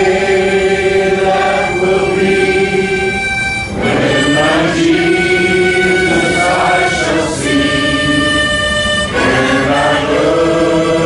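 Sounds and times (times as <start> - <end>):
harmonica playing chords: 0.0 - 11.0.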